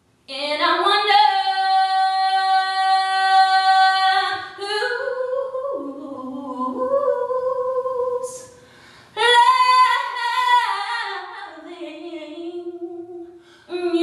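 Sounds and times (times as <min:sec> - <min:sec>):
woman singing a cappella: 0:00.3 - 0:14.0.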